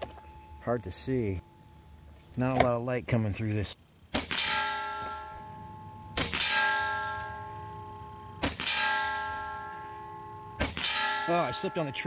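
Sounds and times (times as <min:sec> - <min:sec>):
ringing metallic tone: 0:00.0 - 0:02.6, 0:03.9 - 0:12.0
air rifle shots: 0:04.1 - 0:05.2, 0:06.2 - 0:07.3, 0:08.4 - 0:09.6, 0:10.6 - 0:11.3.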